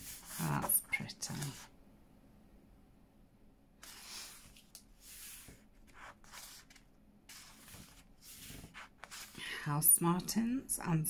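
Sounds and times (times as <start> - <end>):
book page turning: 0.0 - 1.7, 3.8 - 9.4.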